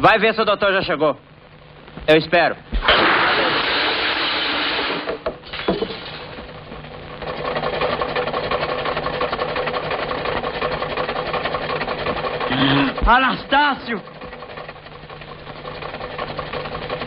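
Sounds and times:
short loud hiss: 2.8 - 5.2.

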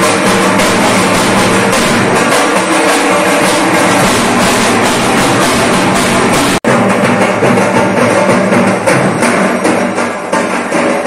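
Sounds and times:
barrel drums beaten fast: 0.0 - 11.0.

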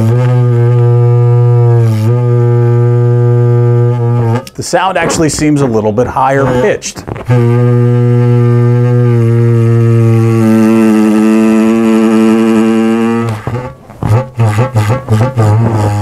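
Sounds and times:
balloon reedy drone: 0.0 - 5.2, 6.4 - 16.0.

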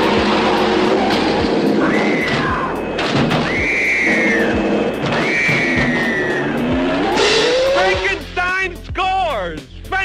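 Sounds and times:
car tire screech: 0.0 - 2.8, 3.4 - 8.1
rising tone: 0.0 - 8.1
soundtrack music: 0.0 - 10.0.

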